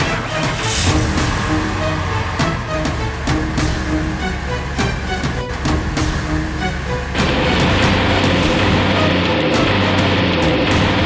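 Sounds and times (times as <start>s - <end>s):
background music: 0.0s - 11.0s
car driving off: 0.0s - 11.0s.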